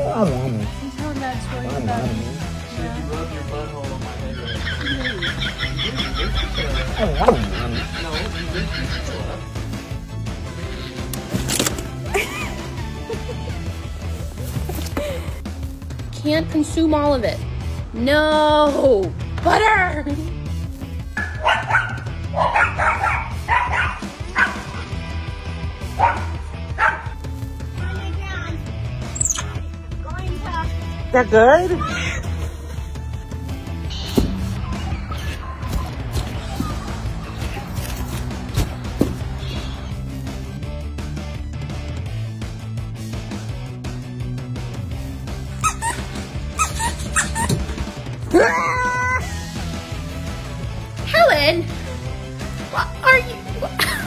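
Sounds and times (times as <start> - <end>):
background music with low beat: 0.0 - 54.0
small dog barking: 21.2 - 24.8, 26.0 - 27.2.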